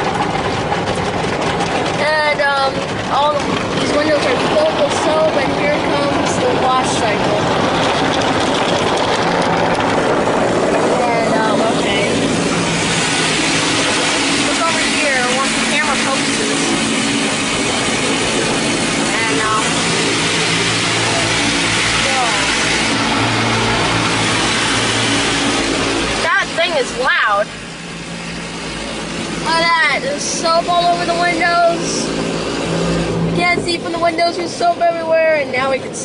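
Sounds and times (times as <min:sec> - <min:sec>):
water spray beating on car: 0:00.0 - 0:35.0
low machine hum: 0:00.0 - 0:36.0.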